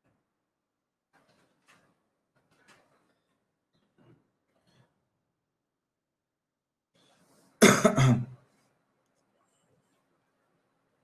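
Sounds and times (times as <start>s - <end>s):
person coughing: 7.6s - 8.4s.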